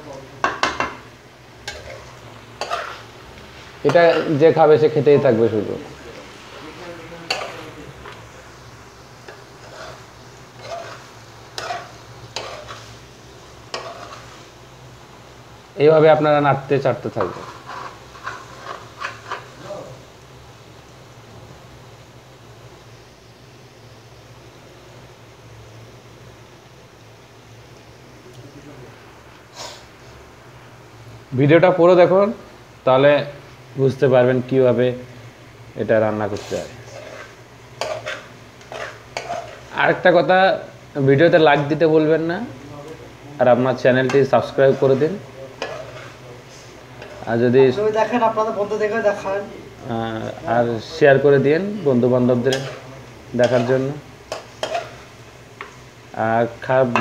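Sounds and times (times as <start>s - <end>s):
quiet frying sizzle: 0.0s - 57.0s
spoon knocking on pan: 0.4s - 1.0s
spoon scraping metal pan: 1.6s - 3.1s, 7.3s - 8.2s, 9.2s - 13.0s, 13.7s - 14.5s, 17.2s - 19.6s, 36.4s - 39.8s, 44.0s - 47.3s, 52.3s - 55.8s
man speaking: 3.8s - 8.0s, 56.2s - 57.0s.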